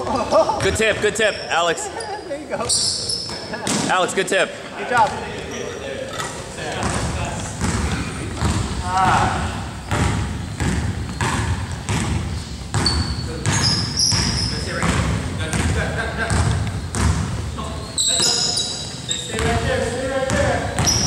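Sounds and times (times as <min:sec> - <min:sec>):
sneaker squeaks: 0:00.6 - 0:03.9, 0:05.0 - 0:21.0
basketball bouncing on hardwood: 0:06.8 - 0:09.2, 0:09.9 - 0:17.4, 0:20.3 - 0:21.0.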